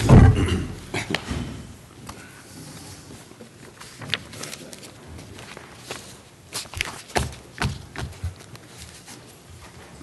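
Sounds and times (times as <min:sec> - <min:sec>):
footsteps walking across room: 0:04.9 - 0:10.0.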